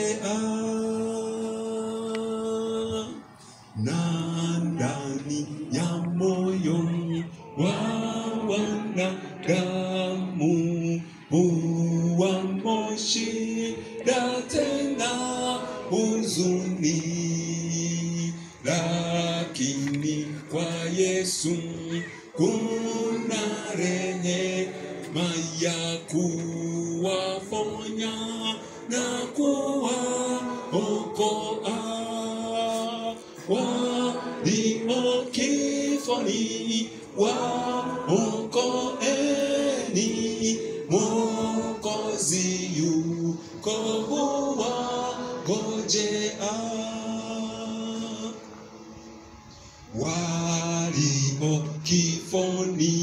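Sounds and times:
person singing slow chant: 0:00.0 - 0:53.0.

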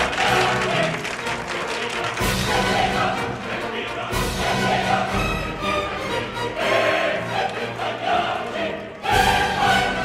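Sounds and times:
opera chorus singing: 0:00.0 - 0:10.0
orchestra playing: 0:00.0 - 0:10.0.

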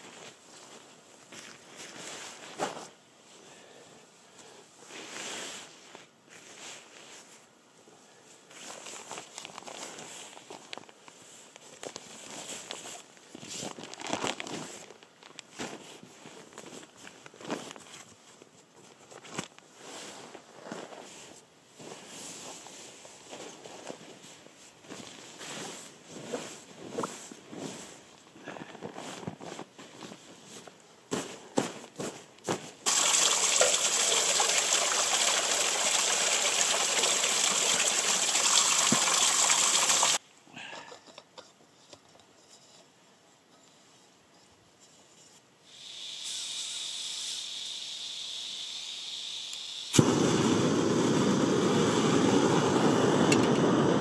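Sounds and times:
nylon bags rustling: 0:08.6 - 0:17.9.

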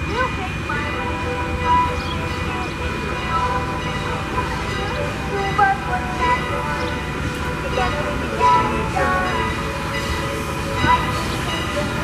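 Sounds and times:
steam locomotive rumbling: 0:00.0 - 0:12.0
voices in background: 0:07.5 - 0:09.7.

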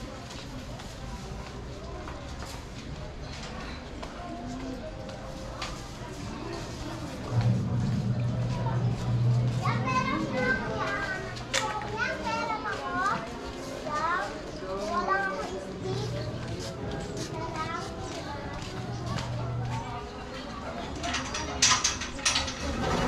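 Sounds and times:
murmur of voices: 0:00.0 - 0:23.0
children playing and shouting: 0:06.0 - 0:23.0
low steady hum: 0:06.8 - 0:11.5.

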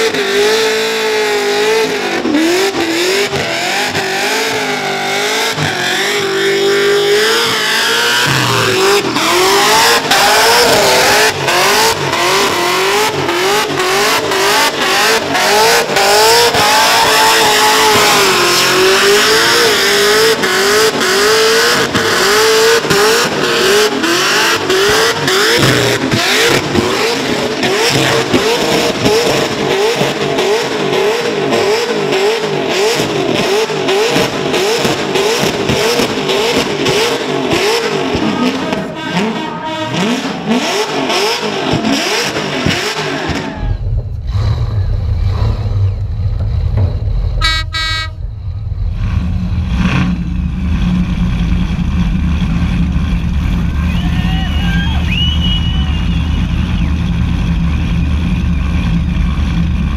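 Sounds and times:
engine revving in surges: 0:00.0 - 0:54.2.

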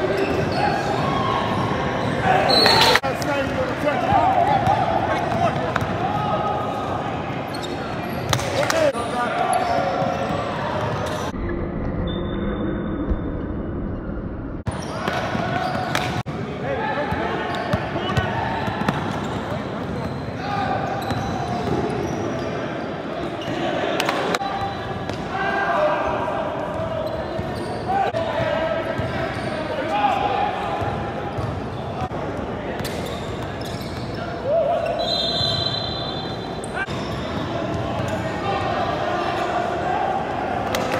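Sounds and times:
shouting and chatter: 0:00.0 - 0:11.3, 0:14.7 - 0:40.9
basketball bouncing on court: 0:17.6 - 0:20.2, 0:30.8 - 0:31.8.

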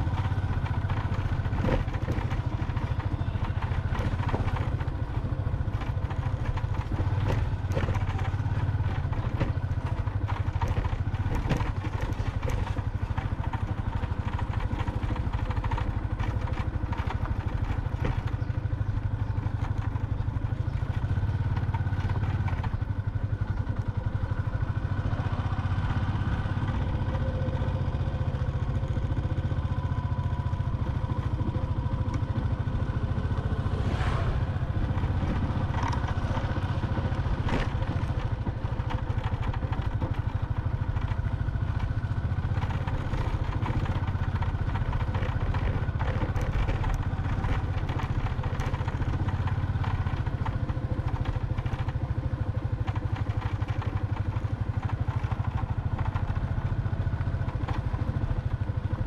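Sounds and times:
rattles and knocks from bumps: 0:00.0 - 0:25.1, 0:25.8 - 0:59.0
motorbike engine running: 0:00.0 - 0:59.0.

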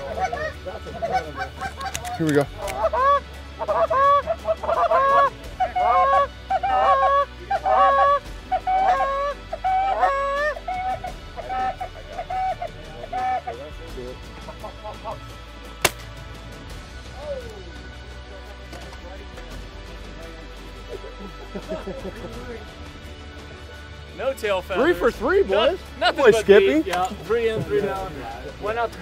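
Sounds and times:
goose honking: 0:00.0 - 0:13.6
shotgun shot: 0:15.8 - 0:16.2.

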